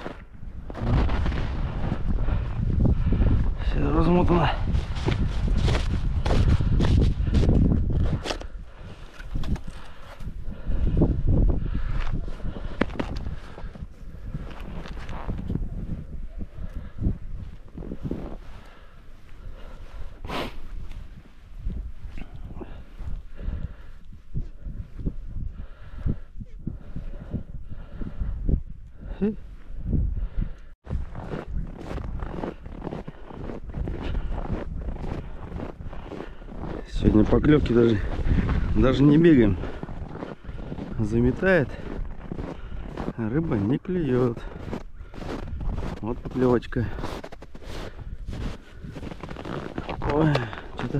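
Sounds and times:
footsteps crunching in snow: 0.0 - 2.6, 4.2 - 8.5, 30.9 - 50.9
crunching of snow: 0.0 - 10.7, 11.9 - 15.7, 30.9 - 50.9
wind buffeting microphone: 0.0 - 50.9
rustling of gloves and clothing: 4.6 - 10.7, 11.8 - 16.2, 44.4 - 50.9.

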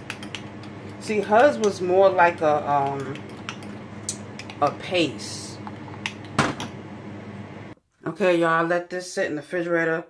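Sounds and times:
low steady hum: 0.0 - 8.7.

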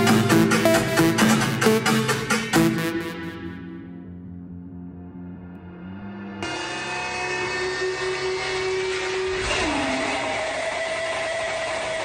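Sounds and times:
sustained synthesizer tones: 0.0 - 11.4.

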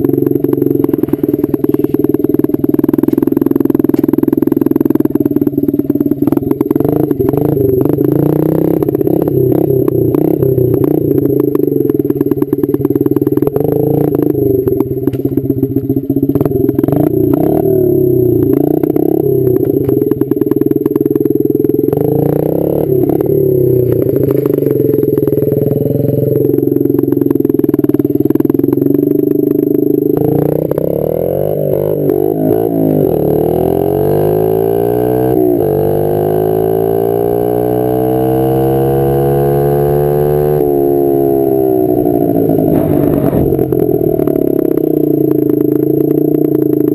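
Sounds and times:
small motorcycle engine running: 0.0 - 46.9.

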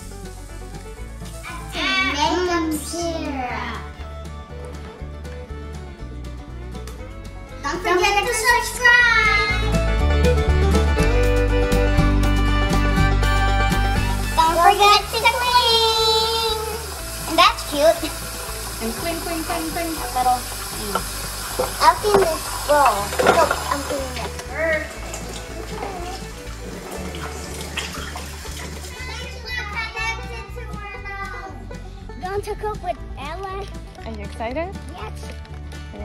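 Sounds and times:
children's high-pitched voices: 1.4 - 4.0, 7.6 - 9.8, 14.4 - 18.2, 28.6 - 33.7
music with steady bass beat: 9.5 - 14.8.

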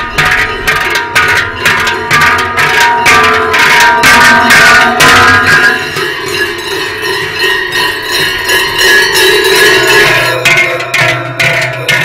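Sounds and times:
large bells jangling: 0.0 - 12.0.

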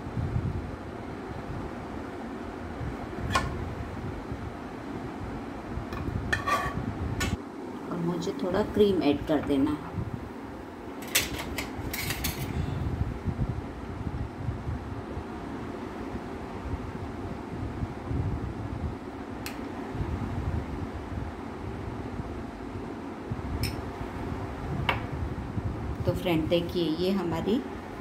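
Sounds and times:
steady whir of room noise: 0.0 - 28.0.

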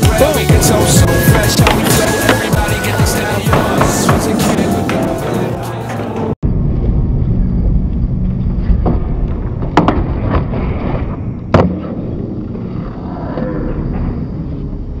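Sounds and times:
skateboard wheels rolling: 0.4 - 6.3, 8.2 - 15.0.

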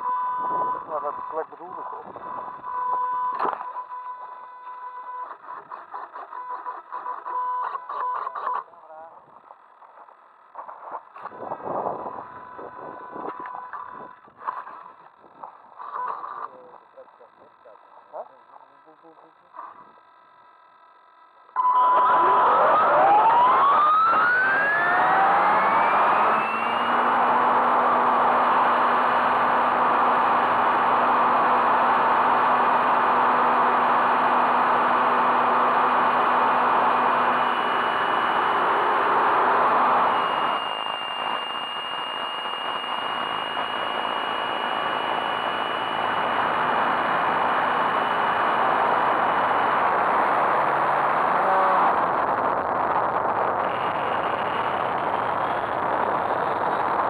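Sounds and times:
higher steady whine: 10.0 - 15.8, 20.8 - 57.0
rc helicopter motor whine: 22.1 - 57.0.

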